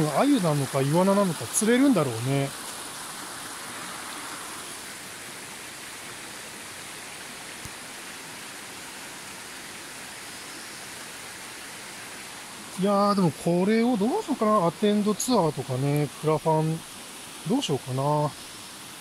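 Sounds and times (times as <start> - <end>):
stream running over stones: 0.0 - 19.0.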